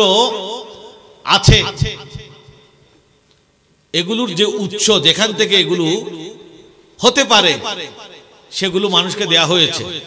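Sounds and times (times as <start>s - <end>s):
man speaking into microphone: 0.0s - 2.4s, 3.9s - 10.0s.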